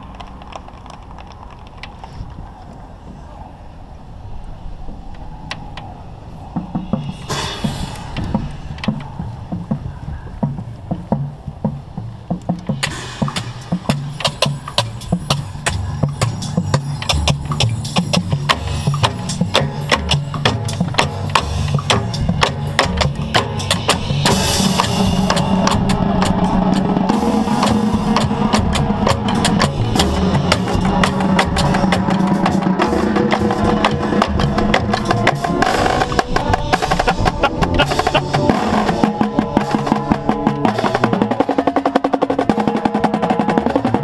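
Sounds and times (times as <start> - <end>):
drumline: 6.4 - 44.0
marching tenor drums: 6.7 - 44.0.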